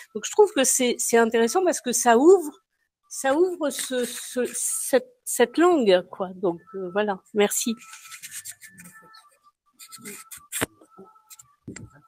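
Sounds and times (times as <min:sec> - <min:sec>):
faint rubbing and scratching: 0:03.4 - 0:04.9, 0:07.5 - 0:12.0.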